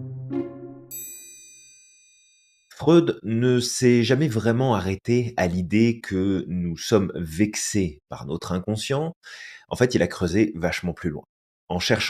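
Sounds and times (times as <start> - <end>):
plucked notes: 0.0 - 1.1
bright bell-like ding: 0.9 - 2.7.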